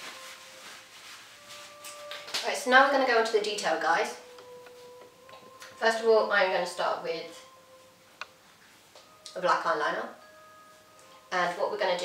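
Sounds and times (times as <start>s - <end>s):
soft sustained music notes: 0.0s - 12.0s.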